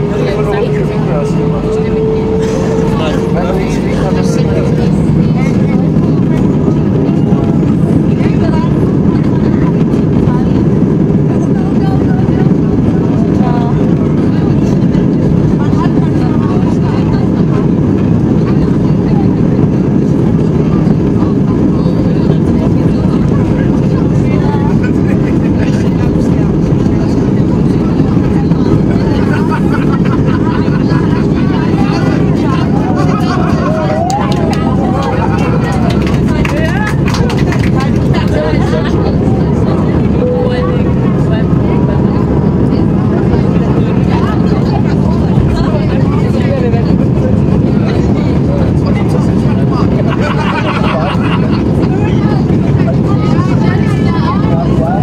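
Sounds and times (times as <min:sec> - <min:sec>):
jet engines at takeoff: 0:00.0 - 0:55.0.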